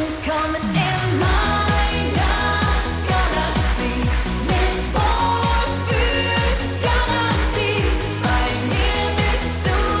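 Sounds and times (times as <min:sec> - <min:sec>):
upbeat pop song: 0:00.0 - 0:10.0
woman singing: 0:00.0 - 0:10.0.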